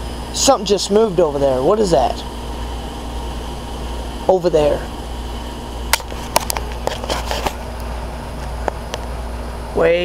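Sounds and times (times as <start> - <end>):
steady low hum: 0.0 - 10.0
camera handling clicks and rustles: 6.0 - 7.6.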